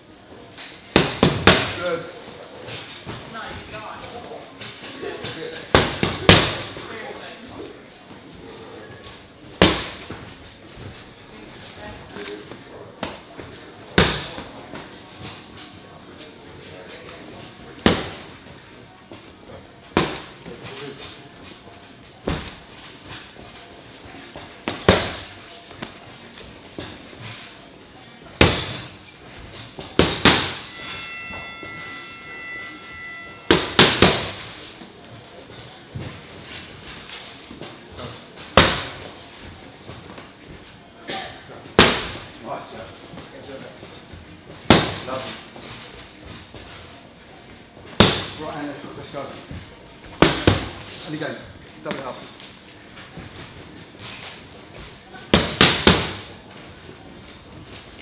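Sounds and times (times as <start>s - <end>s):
punches smacking boxing pads: 0.9s - 1.8s, 5.7s - 6.7s, 9.6s - 10.1s, 28.4s - 28.9s, 30.0s - 30.6s, 33.5s - 34.5s, 38.5s - 39.1s, 44.6s - 45.0s, 48.0s - 48.4s, 50.1s - 50.8s, 55.3s - 56.3s.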